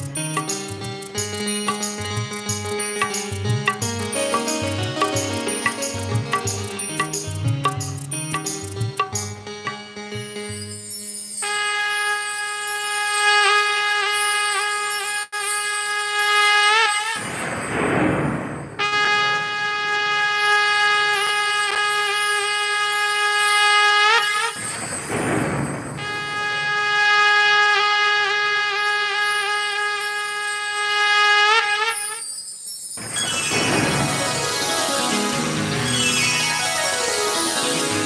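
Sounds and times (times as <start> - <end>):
shrill wind instrument notes: 0.0 - 9.2, 10.4 - 17.2, 18.8 - 24.8, 26.0 - 38.0
crashing percussion burst: 17.2 - 18.8, 33.0 - 37.1.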